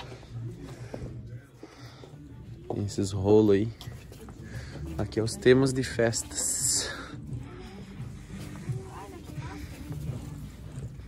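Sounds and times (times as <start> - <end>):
faint indistinct talking: 0.0 - 11.0.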